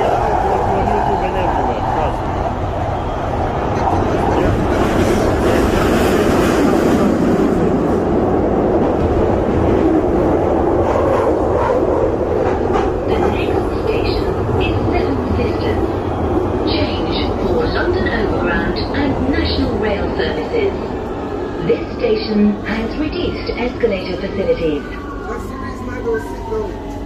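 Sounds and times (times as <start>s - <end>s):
train wheels rumbling on rails: 0.0s - 27.0s.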